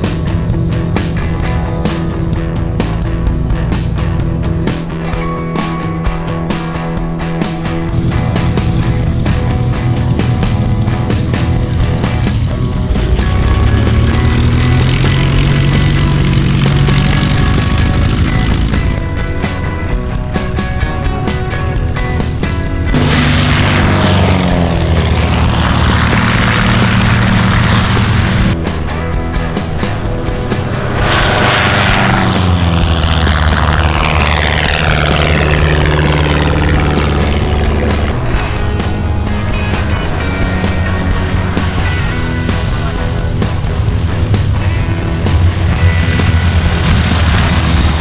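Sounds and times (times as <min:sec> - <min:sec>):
background music: 0:00.0 - 0:48.0
propeller plane passing overhead: 0:00.0 - 0:48.0.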